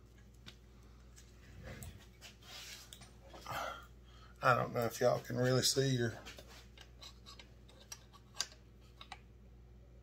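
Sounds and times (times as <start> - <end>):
low steady hum: 0.0 - 10.0
tools and pen clicking: 6.8 - 9.2.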